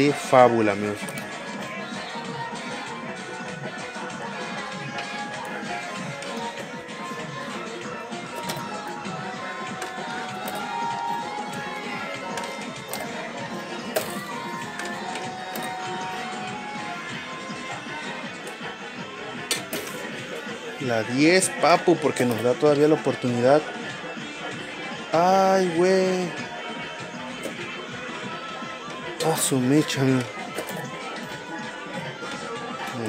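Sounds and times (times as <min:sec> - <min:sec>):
electronic music: 0:00.0 - 0:33.0.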